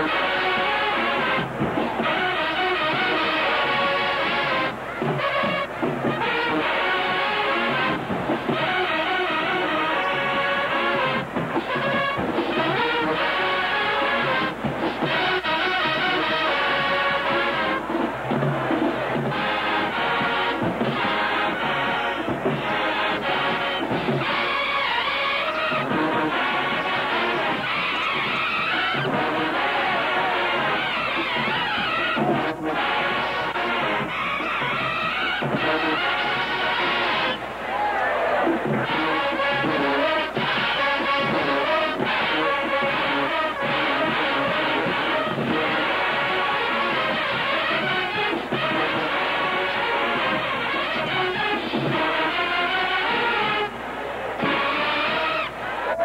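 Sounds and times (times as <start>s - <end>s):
marching band brass playing: 0.0s - 56.0s.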